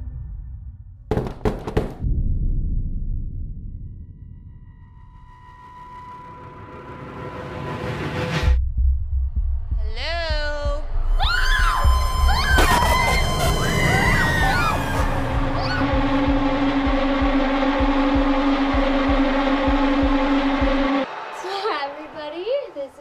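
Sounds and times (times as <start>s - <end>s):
tense trailer music: 0.0s - 21.1s
woman calling out: 9.8s - 10.8s
women screaming: 11.1s - 16.0s.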